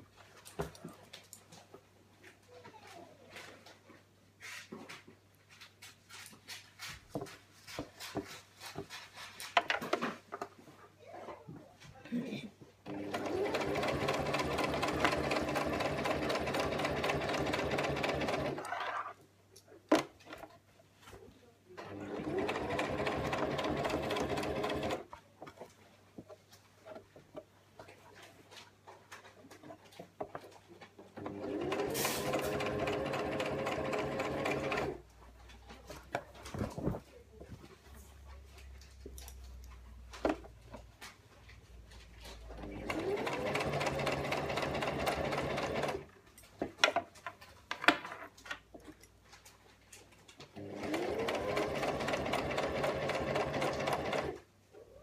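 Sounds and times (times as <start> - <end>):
sewing machine stitching: 12.8 - 19.0, 21.8 - 25.1, 31.2 - 35.0, 42.5 - 46.1, 50.6 - 54.4
clicks and rustles of handling: 25.0 - 31.2, 35.0 - 42.6, 46.1 - 50.6.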